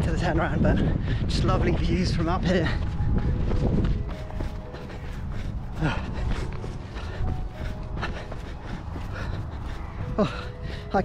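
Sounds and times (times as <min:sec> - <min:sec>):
wind rumble on microphone: 0:00.0 - 0:11.0
runner grunting: 0:05.7 - 0:06.5.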